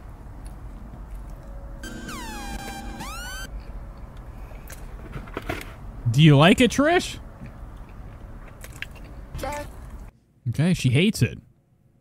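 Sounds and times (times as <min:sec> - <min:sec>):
electronic tones gliding down and up: 0:01.8 - 0:03.5.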